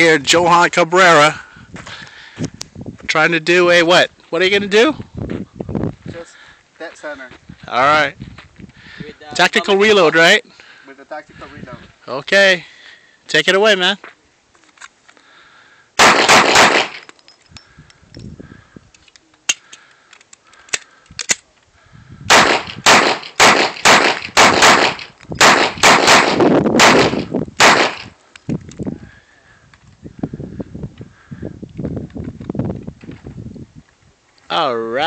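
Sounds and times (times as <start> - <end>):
pistol shots: 16.0 - 17.1, 22.3 - 28.1.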